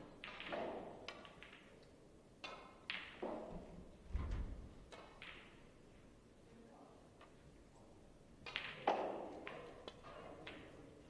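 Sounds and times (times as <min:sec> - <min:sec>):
snooker balls clacking: 0:00.1 - 0:01.8, 0:02.4 - 0:03.8, 0:04.8 - 0:05.7, 0:08.4 - 0:11.0.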